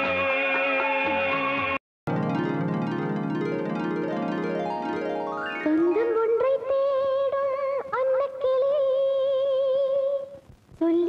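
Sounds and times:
woman singing film song: 5.6 - 11.0.

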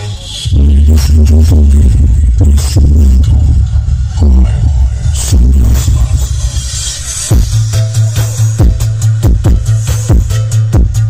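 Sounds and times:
loud electronic music with deep bass: 0.0 - 11.0.

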